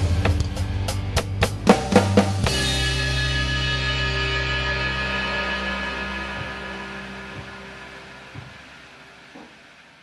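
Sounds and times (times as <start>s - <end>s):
rock ballad backing track: 0.0s - 9.8s
drum and cymbal hits: 0.0s - 10.0s.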